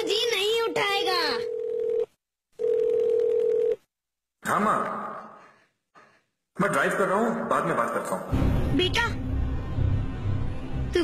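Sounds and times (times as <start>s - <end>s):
person answering phone: 1.4s - 3.9s
telephone ringing tone beep: 1.4s - 3.9s.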